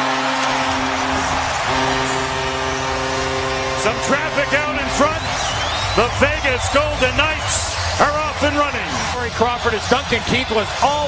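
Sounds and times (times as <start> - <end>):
goal horn blast: 0.0 - 8.3
crowd cheering: 0.0 - 11.0.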